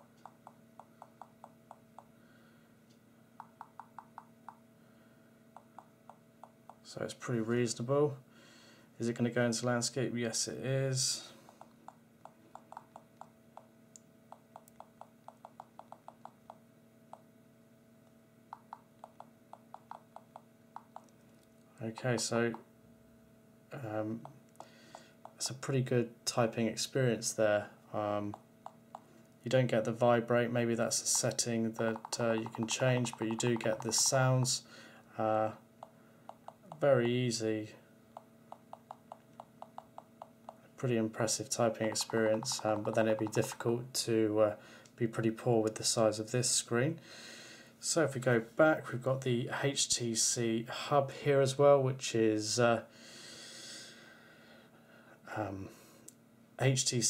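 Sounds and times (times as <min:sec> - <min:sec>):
phone keyboard ticks: 0:00.0 - 0:02.1, 0:03.4 - 0:04.6, 0:05.6 - 0:06.8, 0:11.5 - 0:13.7, 0:14.3 - 0:17.3, 0:18.6 - 0:21.1, 0:28.3 - 0:29.0, 0:31.1 - 0:34.5, 0:35.8 - 0:37.2, 0:38.2 - 0:40.6, 0:41.8 - 0:43.6.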